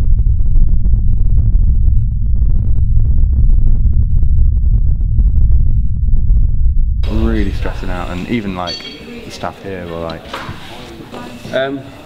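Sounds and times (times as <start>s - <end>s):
deep bass rumble: 0.0s - 8.6s.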